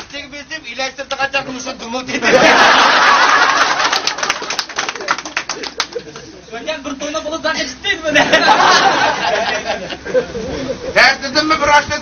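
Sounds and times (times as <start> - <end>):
men laughing and talking: 1.8 - 4.2, 4.9 - 11.6.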